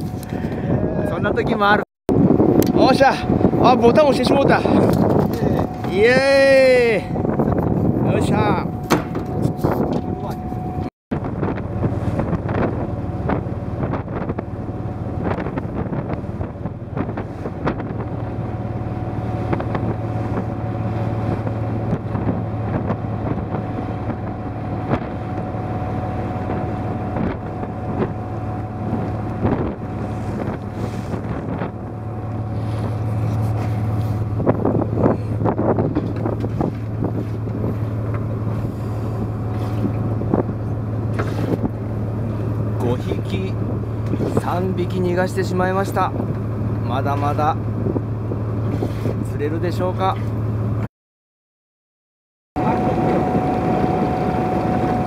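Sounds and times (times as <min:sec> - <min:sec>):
water washing past hull: 0:00.0 - 0:50.8, 0:52.6 - 0:55.0
wind buffeting microphone: 0:00.0 - 0:50.8, 0:52.6 - 0:55.0
boat engine humming: 0:00.0 - 0:50.9, 0:52.6 - 0:55.0.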